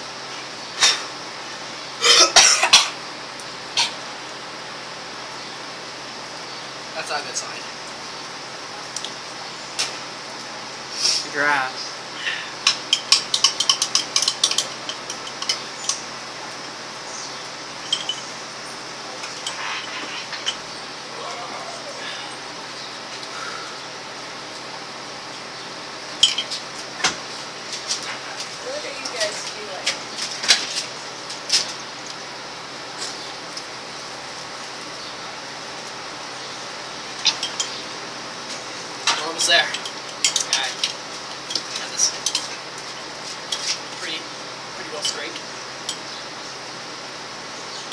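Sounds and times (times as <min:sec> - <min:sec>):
metal spoon clinking against glass: 0:12.7 - 0:16.0, 0:17.8 - 0:18.3, 0:37.2 - 0:37.8, 0:39.4 - 0:40.6.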